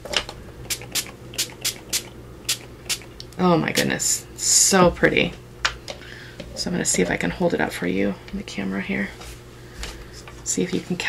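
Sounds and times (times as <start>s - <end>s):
spray bottle spritzing: 0.7s - 3.1s.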